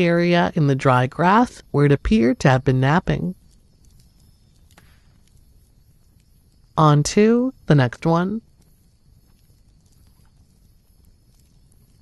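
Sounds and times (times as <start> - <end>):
faint low rumble: 0.0 - 12.0
soft ticks: 3.4 - 6.8.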